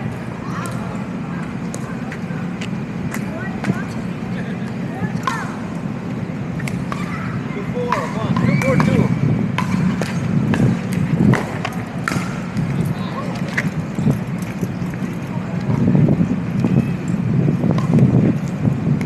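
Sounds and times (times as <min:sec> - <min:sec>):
low city rumble: 0:00.0 - 0:19.0
paddles hitting plastic ball: 0:07.8 - 0:13.9.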